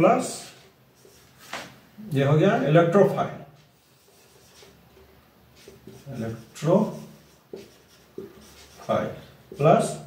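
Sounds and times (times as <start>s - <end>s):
marker writing on whiteboard: 0.3s - 1.8s, 3.6s - 10.0s.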